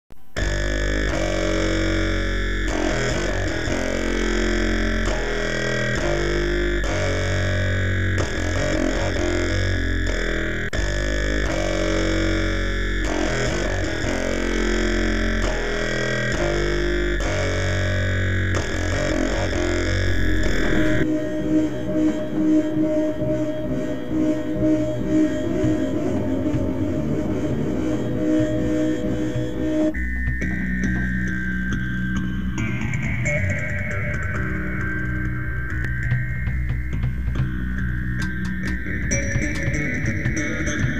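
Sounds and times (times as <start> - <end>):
deep bass drone: 0.4 - 40.9
droning electric guitar chords: 0.4 - 40.9.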